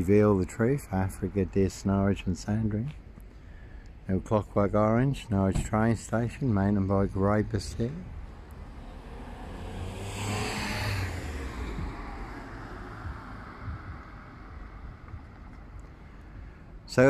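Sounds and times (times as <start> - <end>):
steady low rumble: 0.0 - 17.0
car driving past: 8.0 - 16.4.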